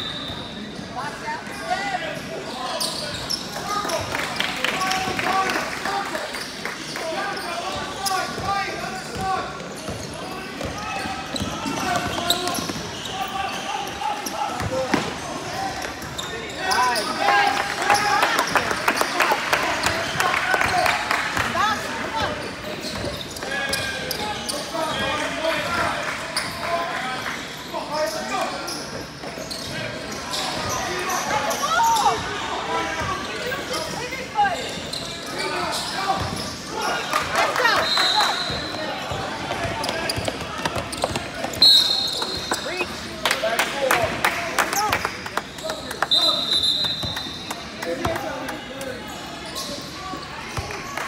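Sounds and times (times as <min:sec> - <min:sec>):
sneakers squeaking: 0:00.0 - 0:05.2, 0:06.2 - 0:26.7, 0:27.4 - 0:43.1, 0:44.8 - 0:51.0
echoing hubbub of voices: 0:00.0 - 0:51.0
basketball bouncing on court: 0:09.2 - 0:13.0.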